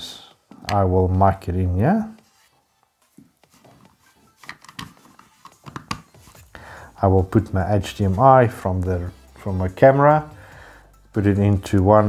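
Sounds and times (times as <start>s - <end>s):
audio plug clicks and rustles: 4.4s - 6.2s.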